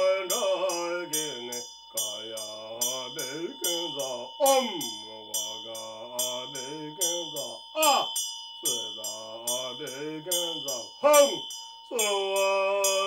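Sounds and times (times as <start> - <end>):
handheld prayer bell ringing: 0.0 - 13.0
man chanting in a low voice: 0.0 - 13.0.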